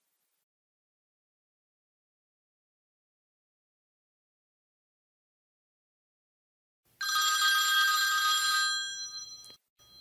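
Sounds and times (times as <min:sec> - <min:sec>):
telephone ringing: 0:07.0 - 0:10.0.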